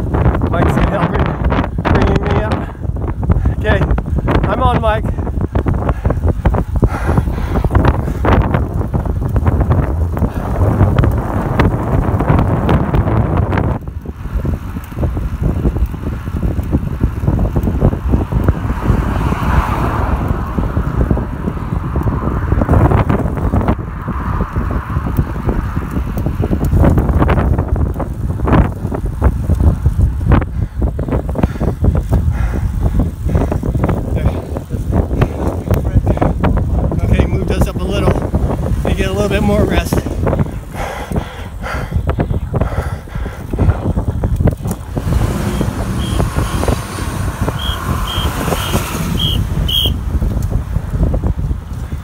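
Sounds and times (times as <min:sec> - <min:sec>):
wind buffeting microphone: 0:00.0 - 0:52.0
car passing: 0:05.7 - 0:15.3, 0:16.3 - 0:26.9, 0:37.9 - 0:51.0.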